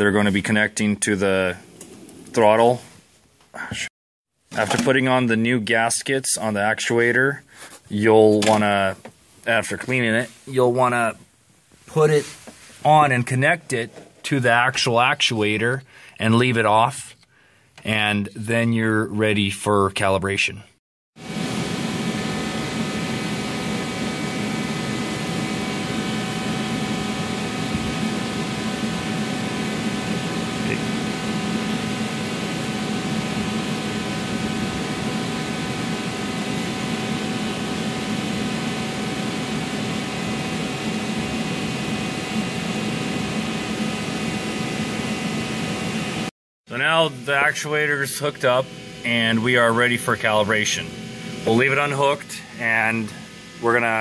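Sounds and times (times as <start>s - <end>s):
machine hum with hiss and tones: 21.2s - 54.0s.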